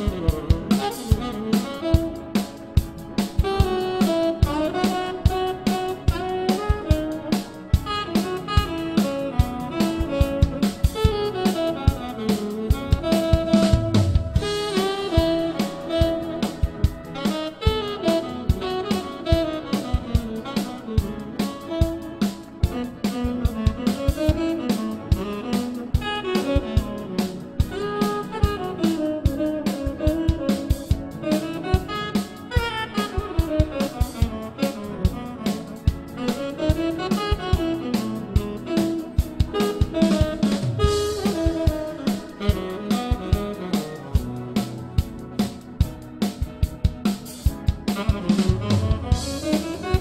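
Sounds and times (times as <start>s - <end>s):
bebop jazz: 0.0s - 50.0s
drum kit busy beat: 0.0s - 50.0s.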